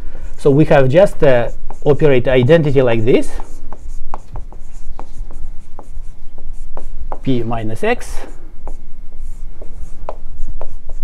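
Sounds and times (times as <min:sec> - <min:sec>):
low room hum: 0:00.0 - 0:11.0
marker writing on whiteboard: 0:01.2 - 0:11.0.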